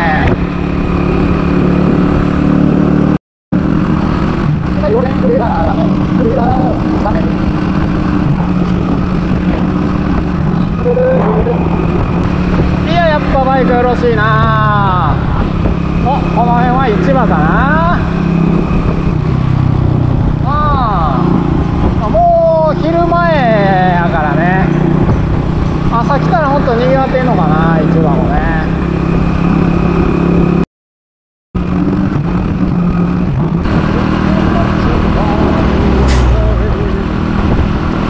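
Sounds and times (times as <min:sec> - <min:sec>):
motorbike engine running: 0:00.0 - 0:30.6, 0:31.6 - 0:38.0
wind and road noise: 0:00.0 - 0:30.7, 0:31.6 - 0:38.0
person speaking: 0:10.5 - 0:12.2.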